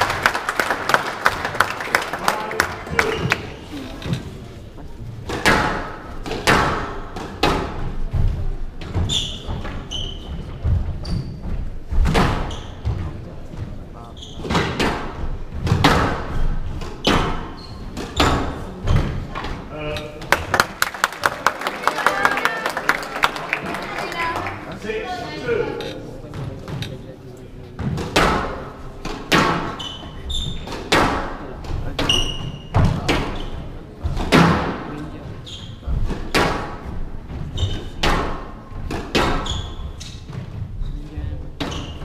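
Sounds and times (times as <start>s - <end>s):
crowd clapping: 0.0s - 3.7s, 20.2s - 25.2s
shoes squeaking on wooden floor: 2.9s - 4.4s, 7.9s - 20.3s, 29.5s - 31.0s, 31.7s - 34.2s, 35.0s - 42.0s.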